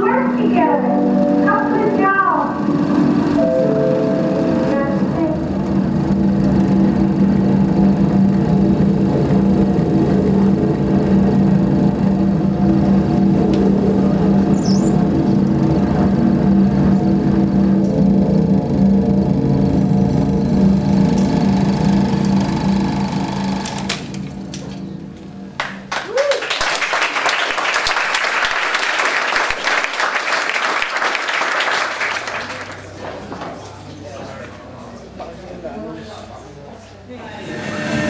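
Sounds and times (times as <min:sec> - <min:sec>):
buzzing low drone: 0:00.0 - 0:25.7, 0:37.2 - 0:38.0
machine-like noisy wash: 0:00.0 - 0:25.9, 0:31.8 - 0:38.0.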